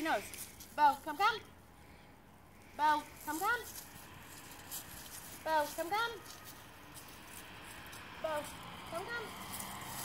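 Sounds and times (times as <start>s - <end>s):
woman calling a dog: 0.0s - 1.5s, 2.7s - 3.8s, 5.4s - 6.4s, 8.2s - 9.4s.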